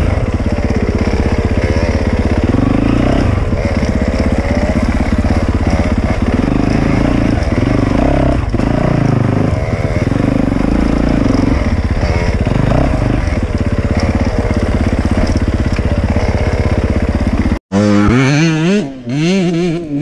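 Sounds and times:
dirt bike engine revving: 0.0 - 20.0.

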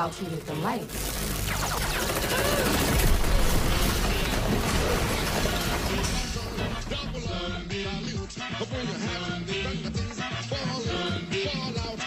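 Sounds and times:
electric blast crackling: 0.8 - 8.1
music with melody and beat: 6.2 - 12.0.

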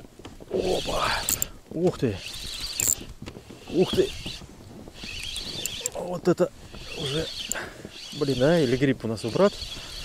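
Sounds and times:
fishing reel whirring: 0.6 - 1.5, 2.1 - 4.4, 5.0 - 6.0, 6.7 - 10.0
sharp reel ticks: 1.2 - 1.5, 2.2 - 3.0, 5.0 - 6.0, 6.8 - 10.0.

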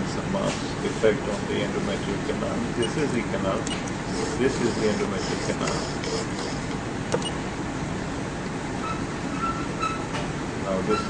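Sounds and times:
background hum and hiss: 0.0 - 11.0
sharp click: 7.1 - 7.4.

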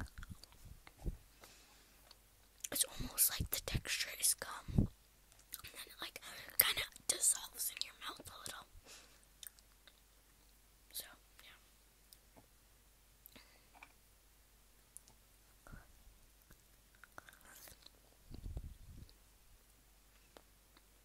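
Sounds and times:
person whispering: 2.7 - 4.9, 5.6 - 8.7, 10.9 - 11.7, 17.0 - 17.9.

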